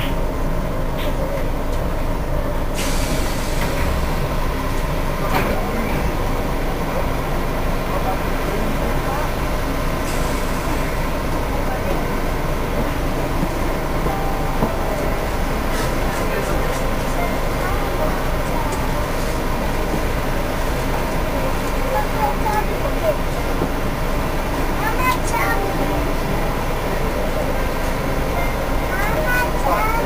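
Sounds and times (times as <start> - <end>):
train rumbling: 0.0 - 30.0.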